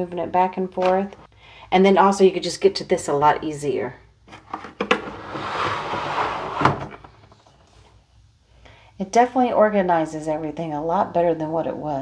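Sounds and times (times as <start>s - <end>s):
drawer sliding: 4.3s - 7.5s.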